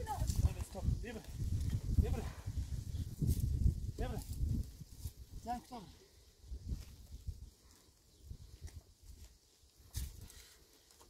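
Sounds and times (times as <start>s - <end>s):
footsteps on stony ground: 6.6s - 11.0s.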